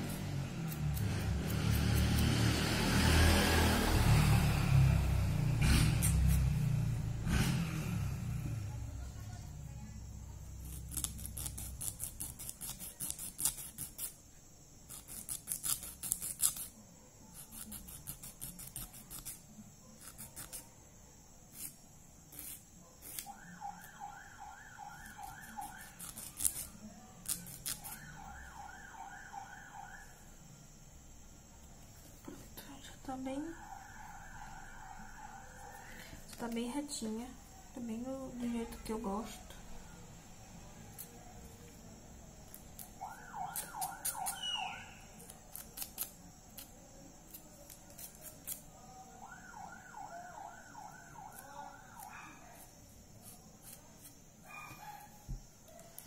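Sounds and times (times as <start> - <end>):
nail file rasping on fingernails: 0.0 - 2.5, 5.8 - 6.6, 10.6 - 14.2, 14.8 - 20.7, 21.5 - 23.3, 25.0 - 28.0, 42.5 - 48.6, 51.3 - 54.2.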